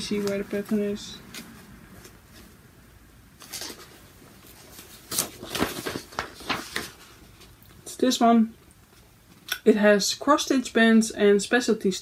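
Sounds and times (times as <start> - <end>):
paper rustling: 3.4 - 7.7.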